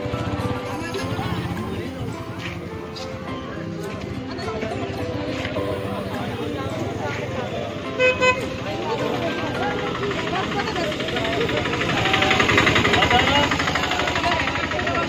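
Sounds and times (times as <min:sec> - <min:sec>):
crowd chatter: 0:00.0 - 0:15.0
engine running nearby: 0:00.0 - 0:15.0
street traffic: 0:00.0 - 0:15.0
vehicle horn toots: 0:08.0 - 0:08.6.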